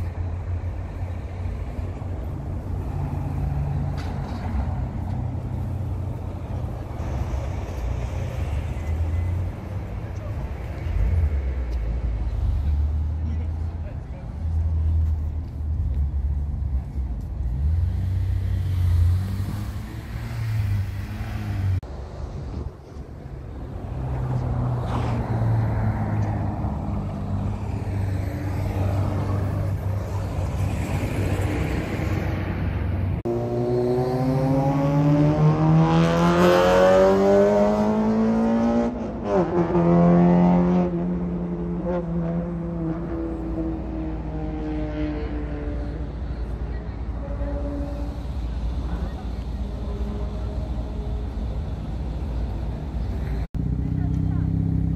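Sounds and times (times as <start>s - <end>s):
car accelerating: 33.2s - 46.1s.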